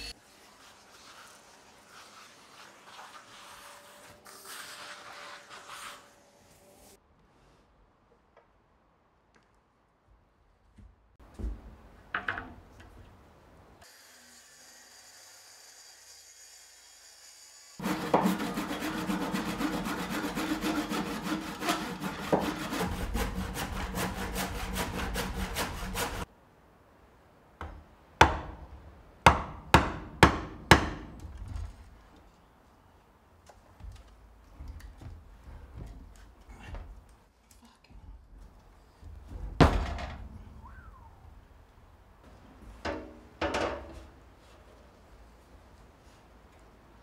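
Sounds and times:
handsaw cutting wood: 0:17.8 - 0:26.2.

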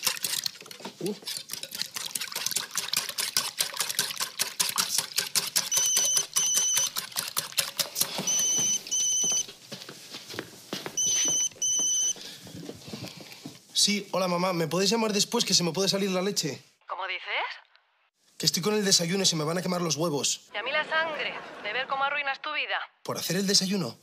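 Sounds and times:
whisk scraping metal saucepan: 0:00.0 - 0:08.5
mobile phone ringing beeps: 0:05.7 - 0:06.9, 0:08.2 - 0:09.5, 0:11.0 - 0:12.2.

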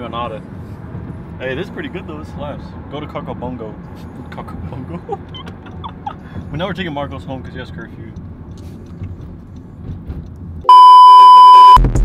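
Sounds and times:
car cabin road noise: 0:00.0 - 0:11.8
electronic censor bleep: 0:10.7 - 0:11.8.

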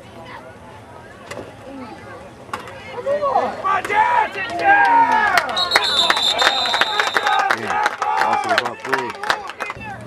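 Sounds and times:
spectators shouting: 0:03.0 - 0:10.0
spectators clapping: 0:04.4 - 0:10.0
referee's whistle: 0:05.5 - 0:07.5.

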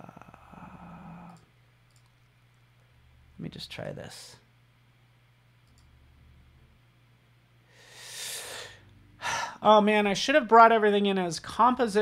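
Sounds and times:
low steady hum: 0:00.0 - 0:12.0
computer mouse clicks: 0:01.2 - 0:02.2, 0:05.6 - 0:05.9.

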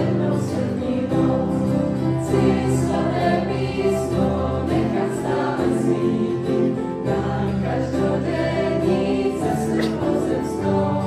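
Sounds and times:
youth choir singing a hymn: 0:00.0 - 0:11.0.

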